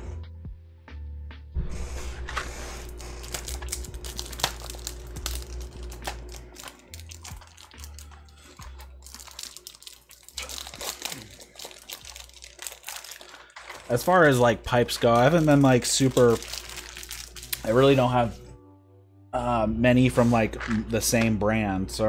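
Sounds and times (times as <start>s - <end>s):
quiet background music: 0.0s - 22.0s
crinkling and rustling: 2.4s - 18.4s.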